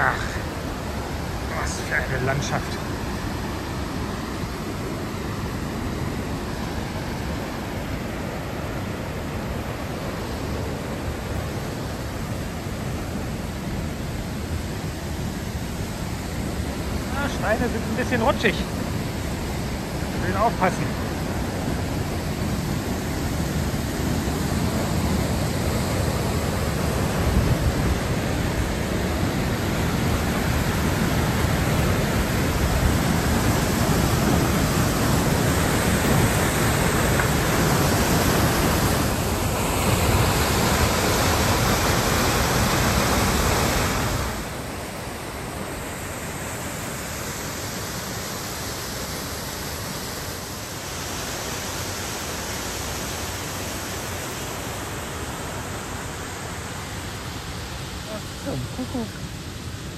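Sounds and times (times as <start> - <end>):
waterfall rushing: 0.0 - 59.9.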